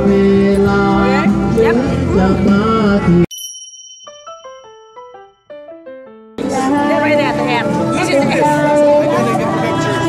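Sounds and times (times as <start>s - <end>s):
bell ding: 3.3s - 5.8s
falling chime notes: 3.3s - 5.9s.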